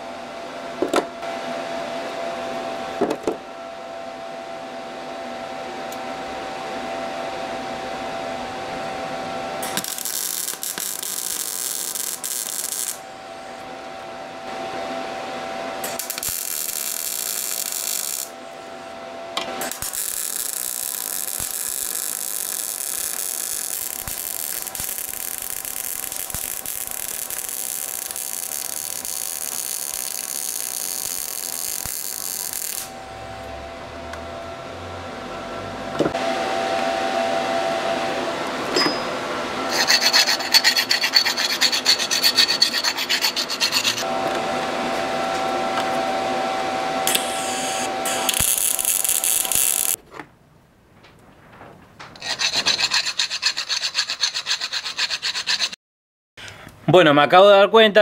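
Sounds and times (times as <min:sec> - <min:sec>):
steady hum: 0:00.0 - 0:50.0
welding arc crackle and hiss: 0:09.6 - 0:13.0, 0:15.8 - 0:18.4, 0:19.6 - 0:33.0, 0:47.1 - 0:50.0.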